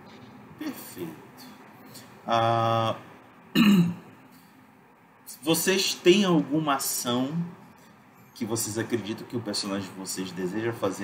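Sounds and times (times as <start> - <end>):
person clearing throat: 3.5 - 4.1.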